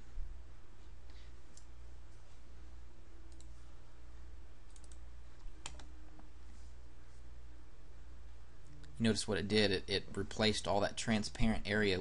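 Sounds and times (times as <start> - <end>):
low electrical hum: 0.0 - 12.0
computer mouse clicks: 3.3 - 3.6, 4.7 - 6.3.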